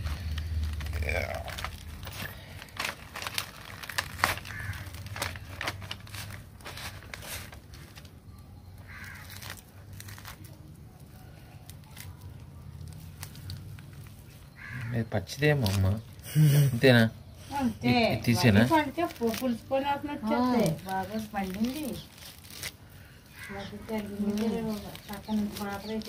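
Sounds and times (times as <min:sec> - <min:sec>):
fruit fibres tearing: 0:00.0 - 0:16.5, 0:18.2 - 0:26.0.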